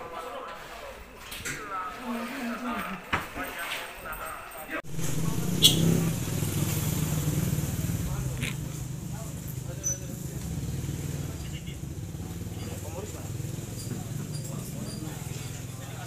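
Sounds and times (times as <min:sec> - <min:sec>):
motorcycle engine idling: 0:04.8 - 0:16.0.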